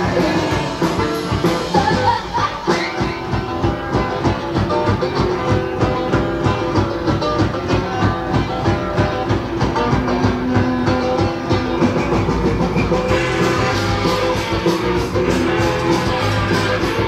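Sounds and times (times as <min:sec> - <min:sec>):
drums keeping steady beat: 0:00.0 - 0:17.0
electric guitar: 0:00.0 - 0:17.0
rock band playing: 0:00.0 - 0:17.0.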